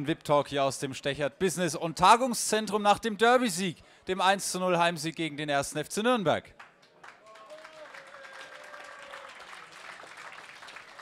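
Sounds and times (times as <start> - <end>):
audience applauding: 6.6 - 11.0.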